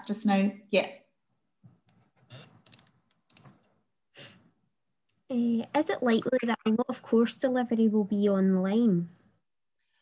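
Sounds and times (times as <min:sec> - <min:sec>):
keyboard typing: 0:01.8 - 0:03.8.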